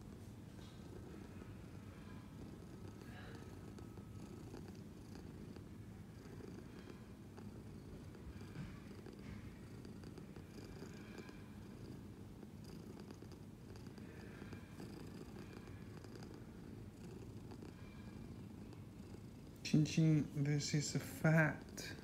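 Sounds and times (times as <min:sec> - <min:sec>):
cat purring: 0:00.0 - 0:22.0.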